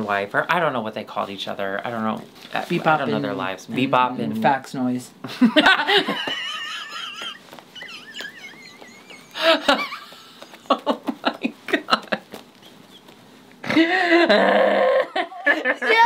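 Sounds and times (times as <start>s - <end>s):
laughter: 5.3s - 13.0s, 13.8s - 16.0s.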